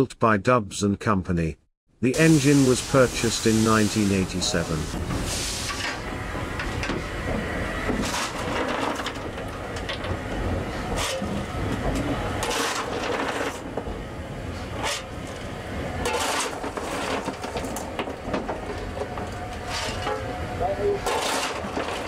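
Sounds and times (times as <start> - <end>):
shovel scraping coal and steel: 8.0 - 9.3, 10.9 - 11.4, 12.3 - 13.7, 14.6 - 15.4, 16.0 - 18.2, 19.6 - 22.0.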